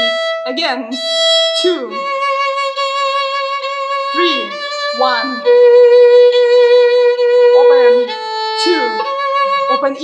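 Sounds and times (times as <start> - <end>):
violin long steady note: 0.0 - 10.0.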